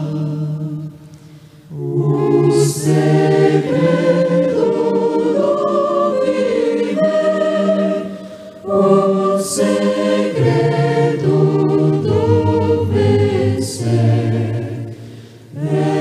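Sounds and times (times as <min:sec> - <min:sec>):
choir singing a hymn: 0:00.0 - 0:01.1, 0:01.7 - 0:16.0.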